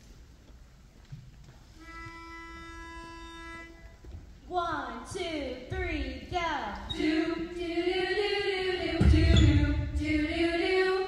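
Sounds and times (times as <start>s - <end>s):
pitch pipe note: 1.8s - 4.0s.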